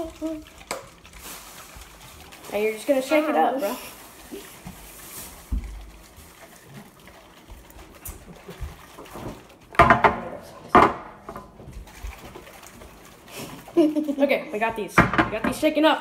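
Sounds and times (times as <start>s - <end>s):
aerosol cans being shaken: 0.0s - 9.6s.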